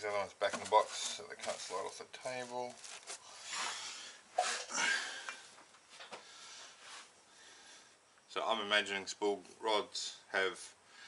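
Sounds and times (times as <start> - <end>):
rustling of packing foam: 0.4 - 3.8.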